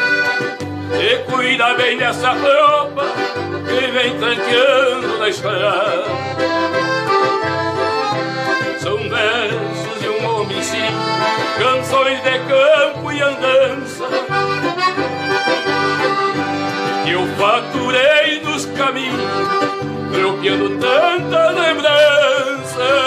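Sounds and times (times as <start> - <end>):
button accordions: 0.0 - 23.0
guitar accompaniment: 0.0 - 23.0.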